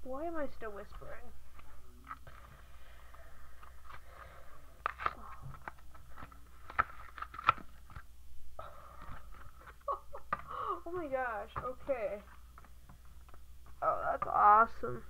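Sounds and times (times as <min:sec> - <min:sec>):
blister packaging crackling: 0:04.8 - 0:08.1.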